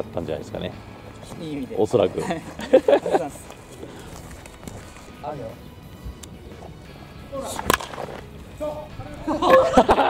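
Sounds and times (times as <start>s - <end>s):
baseball bat cracking ball: 7.4s - 8.5s.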